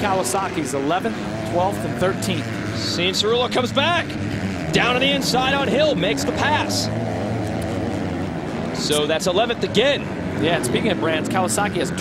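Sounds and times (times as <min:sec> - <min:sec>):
commentator speaking: 0:00.0 - 0:06.9, 0:08.7 - 0:12.0
motocross bike engines revving: 0:00.0 - 0:12.0.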